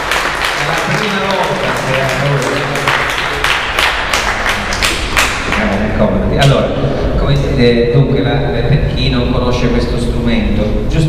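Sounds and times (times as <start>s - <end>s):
audience applause: 0.0s - 5.8s
hands clapping in rhythm: 0.0s - 6.6s.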